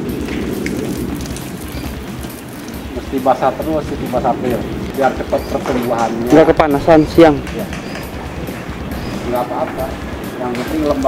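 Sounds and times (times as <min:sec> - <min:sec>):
garden hose spraying water: 0:00.0 - 0:11.0.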